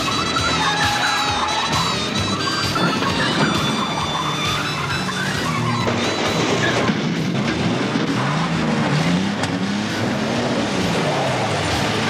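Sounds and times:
driving backing music: 0.0 - 12.0
police siren wailing: 0.0 - 12.0.

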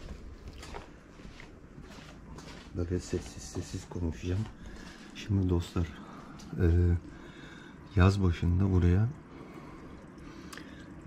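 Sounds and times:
soft footsteps: 0.0 - 7.2
low background hiss: 2.8 - 11.0.

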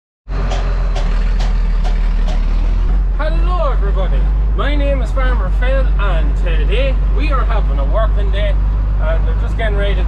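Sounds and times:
tractor engine idling: 0.3 - 10.0
man's voice: 3.2 - 10.0.

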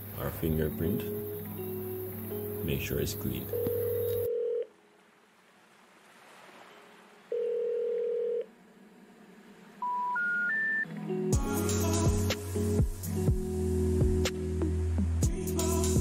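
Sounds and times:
telephone ringing tone: 3.5 - 4.7, 7.3 - 8.5
music with bass line: 11.3 - 16.0.

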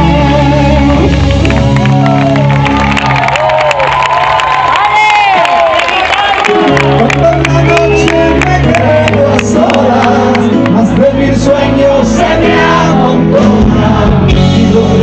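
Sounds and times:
live rock band playing: 0.0 - 4.0, 6.0 - 15.0
crowd cheering: 0.8 - 11.1.

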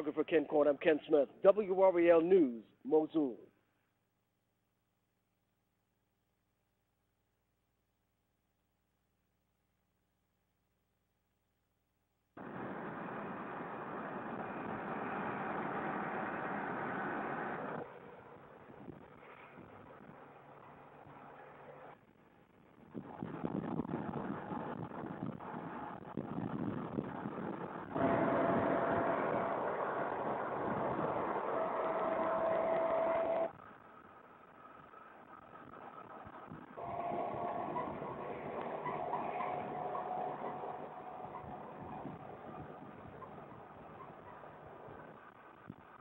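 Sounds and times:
steady whine: 12.4 - 46.0
vehicle engine and road noise: 12.4 - 46.0.

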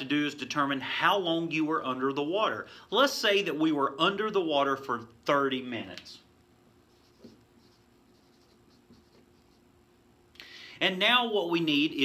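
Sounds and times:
marker squeaking on whiteboard: 6.9 - 9.7.

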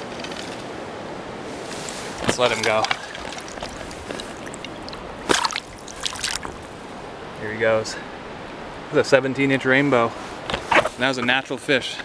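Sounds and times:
river water sloshing and trickling: 1.4 - 7.4
short splashes: 2.1 - 6.8.

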